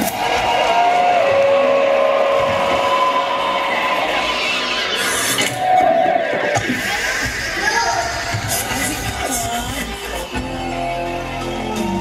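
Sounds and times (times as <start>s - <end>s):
noisy synth wash: 0.0s - 12.0s
synthesizer drone: 0.0s - 12.0s.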